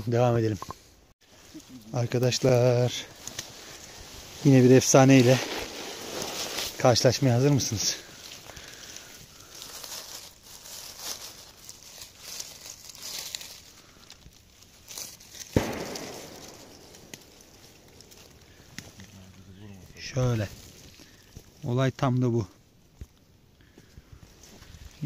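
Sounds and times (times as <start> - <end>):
dry leaves rustling and crunching: 1.3 - 22.5
sharp crack: 14.9 - 21.1.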